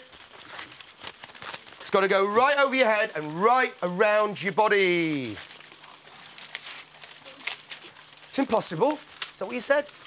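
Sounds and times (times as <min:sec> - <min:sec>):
paper rustling: 0:00.0 - 0:10.0.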